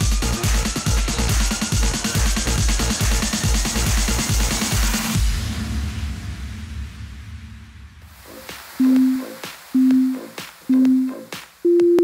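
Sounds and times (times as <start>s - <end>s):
short timer beeps: 8.8s - 9.2s, 9.8s - 12.0s
long high timer beep: 8.8s - 12.0s.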